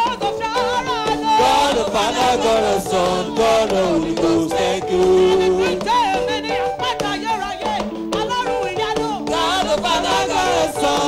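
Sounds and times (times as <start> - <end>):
gospel singing voice: 0.0 - 11.0
held accompaniment chords: 0.0 - 11.0.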